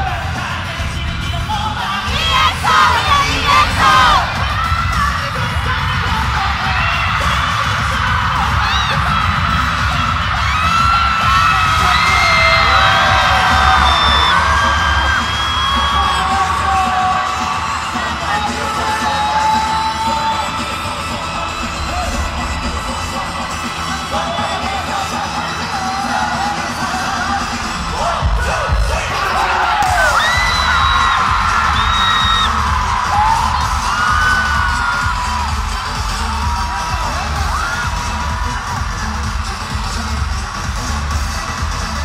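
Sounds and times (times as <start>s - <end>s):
crowd yelling and cheering: 0.0s - 42.0s
pop music with pulsing bass beat: 0.0s - 42.0s.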